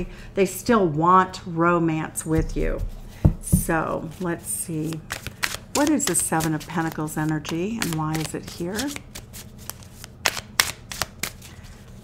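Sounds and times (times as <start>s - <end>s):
cards riffling: 4.9s - 11.6s.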